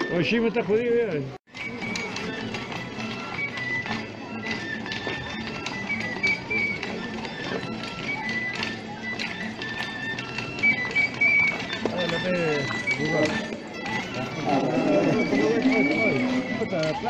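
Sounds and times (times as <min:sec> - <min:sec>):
crowd talking: 0:00.0 - 0:17.0.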